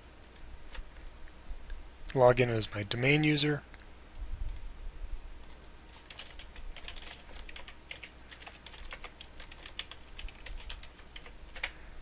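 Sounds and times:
computer keyboard typing: 5.4s - 11.8s.

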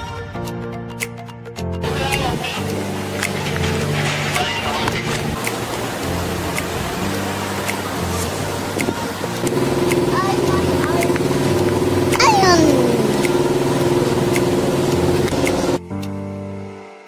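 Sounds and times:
soft background music: 0.0s - 17.0s
steady droning hum: 9.5s - 15.8s.

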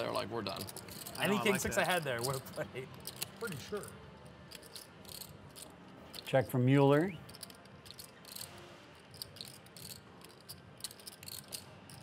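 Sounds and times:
poker chips clicking together: 0.5s - 6.6s, 7.2s - 12.0s.

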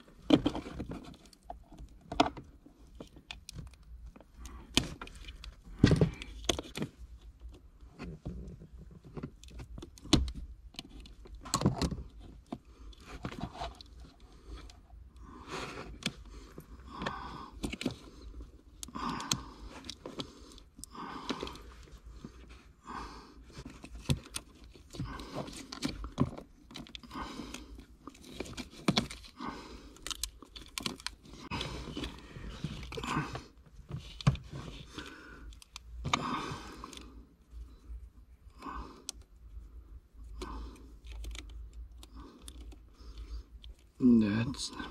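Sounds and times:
hands rustling wiring: 0.0s - 44.2s.

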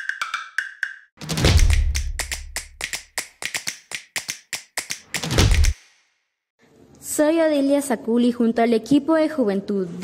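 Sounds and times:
deep bass hit: 1.2s - 2.3s
quick sharp taps: 1.5s - 5.8s.

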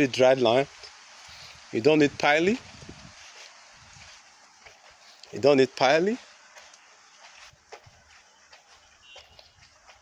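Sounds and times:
faint high chirp: 8.8s - 9.6s.

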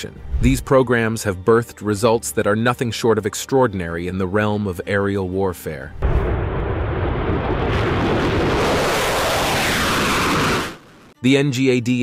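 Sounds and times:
jet plane flying past: 7.8s - 10.8s.

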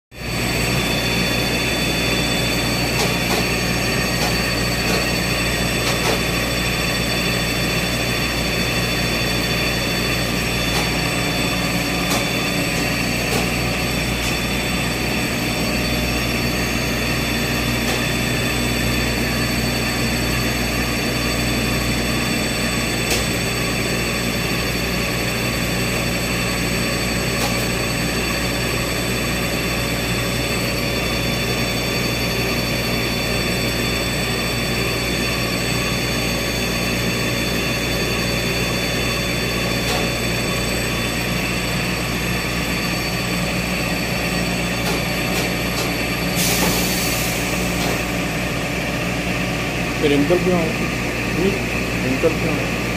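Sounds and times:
high whining tones: 0.1s - 52.9s
machine steady drone: 0.1s - 52.9s.

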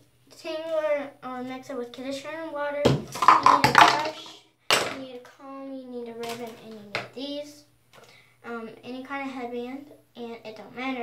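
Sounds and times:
young girl talking: 0.3s - 7.7s, 8.4s - 11.0s.

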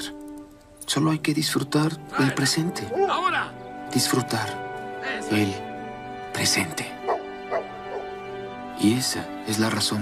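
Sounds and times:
soft background music: 0.0s - 10.0s
dog yipping: 7.1s - 8.1s.

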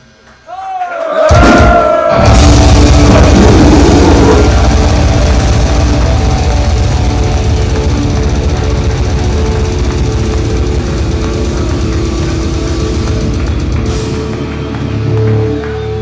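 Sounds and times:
death metal band playing live: 1.3s - 15.6s.

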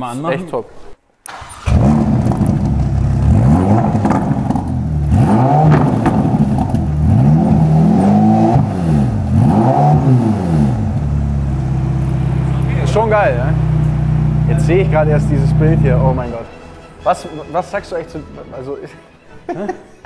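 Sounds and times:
car engine idling: 1.3s - 16.5s
car engine revving: 1.3s - 16.5s.

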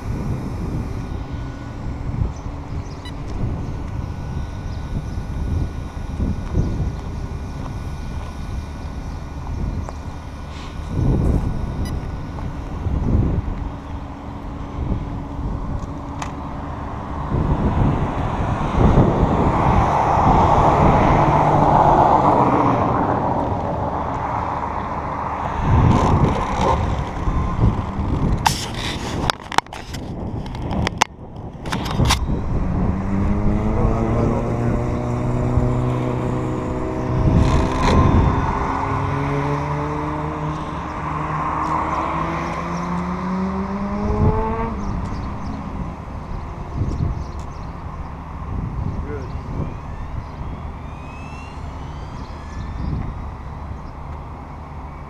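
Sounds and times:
faint steady whine: 0.0s - 18.3s
rumble of wheels on asphalt: 0.0s - 55.0s.

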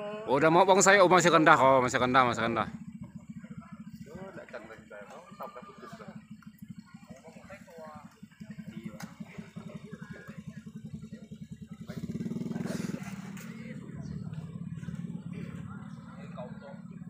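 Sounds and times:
motorcycle engine running: 0.0s - 17.0s
people's voices: 0.0s - 17.0s.

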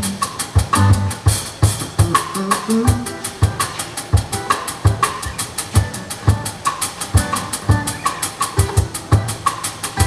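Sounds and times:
drum kit beat: 0.0s - 10.0s
strummed acoustic guitar: 0.0s - 10.0s.

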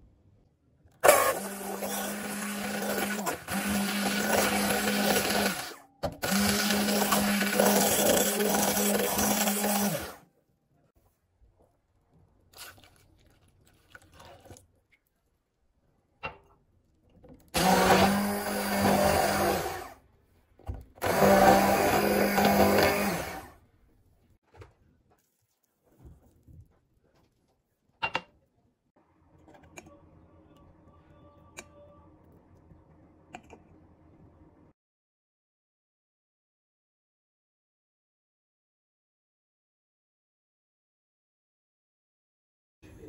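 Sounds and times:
electric immersion blender running: 1.0s - 10.2s, 17.6s - 19.9s, 21.0s - 23.5s.

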